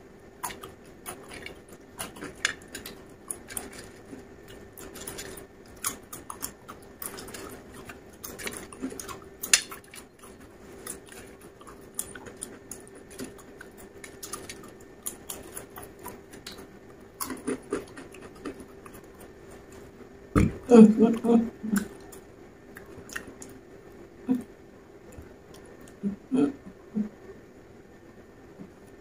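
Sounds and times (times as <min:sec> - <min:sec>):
faint steady hum: 0:00.0 - 0:29.0
chewing crunchy chips: 0:00.4 - 0:19.9.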